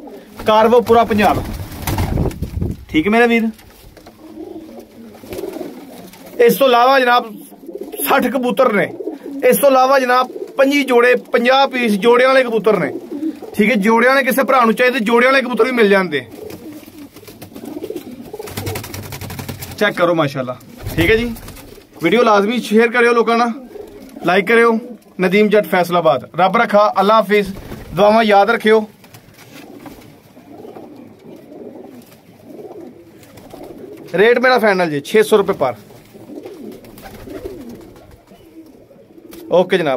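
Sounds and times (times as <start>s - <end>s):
pigeons cooing: 0.0s - 2.2s, 3.8s - 14.3s, 16.2s - 19.7s, 20.6s - 25.2s, 29.3s - 34.3s, 35.8s - 39.7s.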